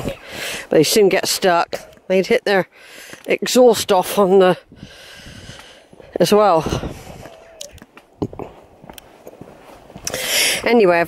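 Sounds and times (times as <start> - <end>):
footsteps on dirt: 3.0 - 11.0.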